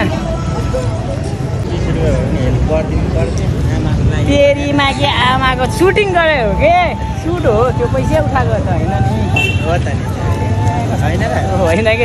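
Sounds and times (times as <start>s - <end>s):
men talking: 0.0s - 4.2s, 8.9s - 12.0s
street traffic rumble: 0.0s - 12.0s.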